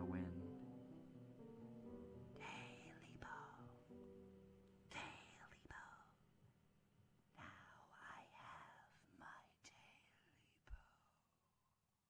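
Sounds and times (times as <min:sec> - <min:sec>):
faint eerie whispering voice: 0:02.4 - 0:03.7, 0:04.9 - 0:06.2, 0:07.4 - 0:11.3.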